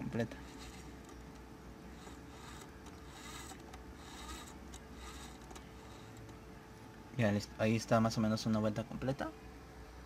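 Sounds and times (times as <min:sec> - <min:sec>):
faint steady hum: 0:00.0 - 0:10.0
gear shaft rubbing and scraping: 0:00.2 - 0:06.4.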